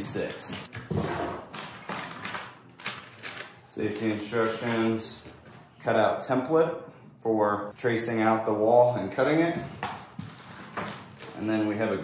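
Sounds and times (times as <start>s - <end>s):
cardboard and paper rustling: 0.0s - 5.0s, 9.7s - 11.6s.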